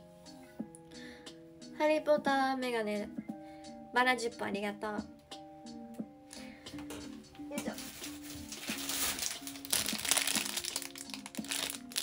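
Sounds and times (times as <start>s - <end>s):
background music: 0.0s - 12.0s
plastic wrapper crinkling: 7.6s - 12.0s.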